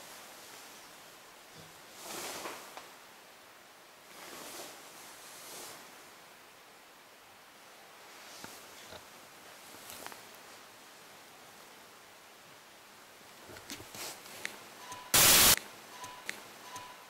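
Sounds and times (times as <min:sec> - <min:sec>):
faint steady high tone: 0:14.8 - 0:15.2
static-like hiss burst: 0:15.1 - 0:16.5.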